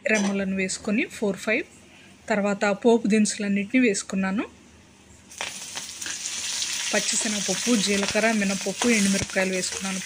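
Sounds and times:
hot oil sizzling: 5.3 - 10.0.

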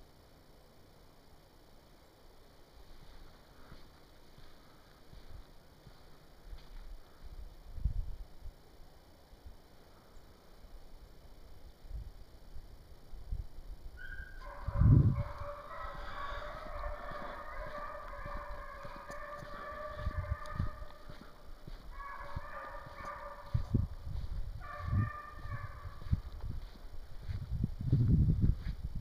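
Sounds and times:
hounds baying: 14.0 - 23.8, 24.6 - 26.2.

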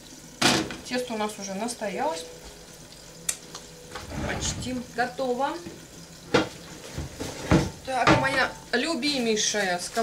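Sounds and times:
metal pans clanking: 3.9 - 4.9, 5.7 - 8.7.

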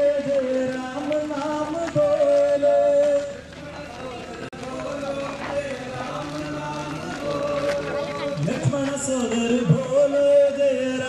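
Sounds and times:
men chanting: 0.0 - 11.0.

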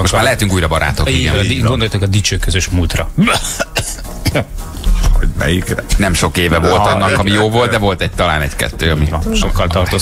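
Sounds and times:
low background music: 0.0 - 10.0
person coughing: 3.2 - 4.6.

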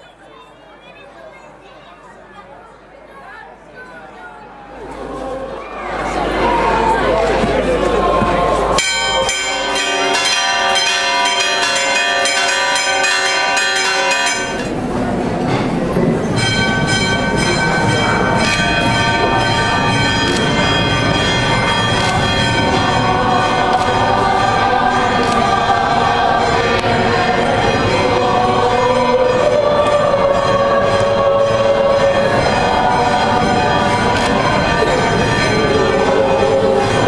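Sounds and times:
choir singing sacred music: 4.6 - 15.3, 16.0 - 37.0.

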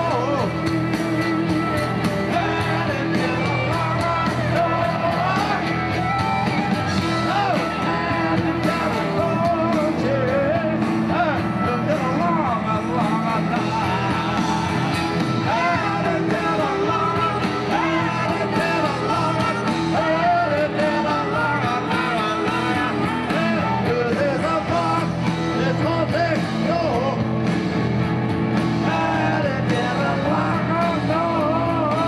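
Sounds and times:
live rock band playing: 0.0 - 32.0.

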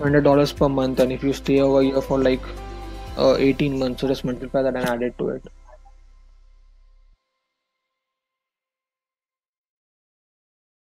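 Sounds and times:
faint background music: 0.0 - 7.1.

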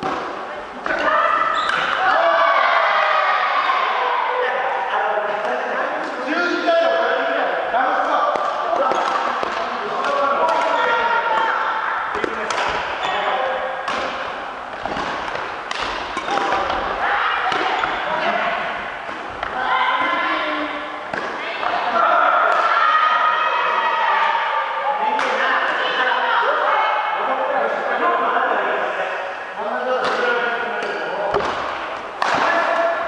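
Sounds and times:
voices echoing in a hall: 0.0 - 33.0
rackets striking shuttlecock: 12.1 - 12.9, 13.8 - 18.0.

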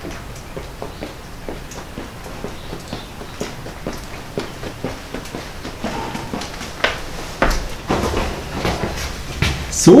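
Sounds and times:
footsteps on paving stones: 0.0 - 9.8.

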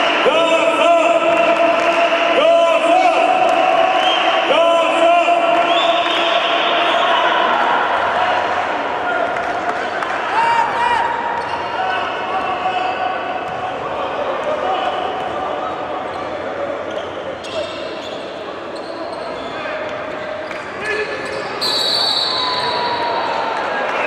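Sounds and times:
voices echoing in hall: 0.0 - 24.0
shoe squeaks: 16.1 - 22.9.

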